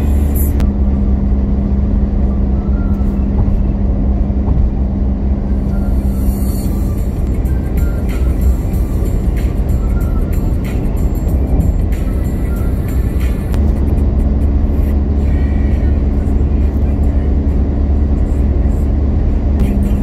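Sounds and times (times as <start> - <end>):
music playing: 0.0 - 0.7, 2.3 - 20.0
tyre and engine rumble in car: 0.0 - 20.0.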